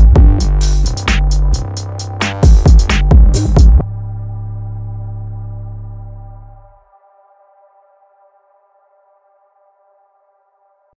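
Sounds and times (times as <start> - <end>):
sustained synthesizer chord: 0.0 - 11.0.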